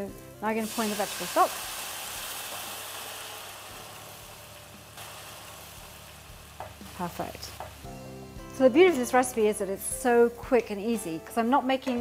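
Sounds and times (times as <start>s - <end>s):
liquid sizzling in frying pan: 0.0s - 10.7s.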